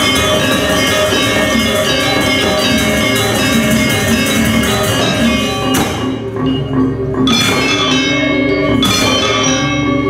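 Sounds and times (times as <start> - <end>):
bright sharp metal strikes: 0.0 - 6.5, 7.2 - 10.0
drums: 0.0 - 9.9
metallophones ringing melody: 0.0 - 10.0.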